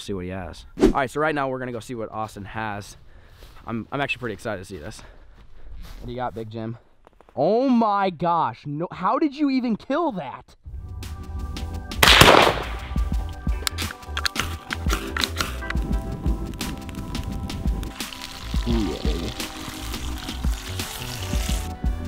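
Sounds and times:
background music with beat: 10.7 - 22.0
rifle shot: 12.0 - 13.0.

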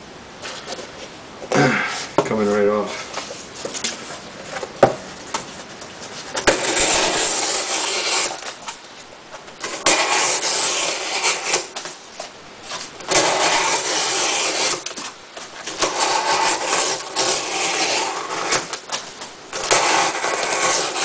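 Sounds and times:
knife cutting cardboard: 4.5 - 8.8, 9.6 - 21.0.

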